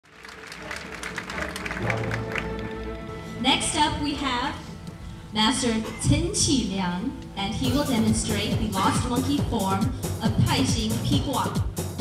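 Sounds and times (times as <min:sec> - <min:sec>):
audience clapping: 0:00.0 - 0:03.1
background music: 0:00.0 - 0:12.0.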